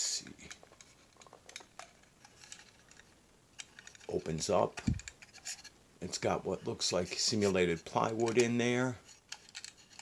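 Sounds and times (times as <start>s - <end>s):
fingers clicking plastic model: 4.8s - 5.4s.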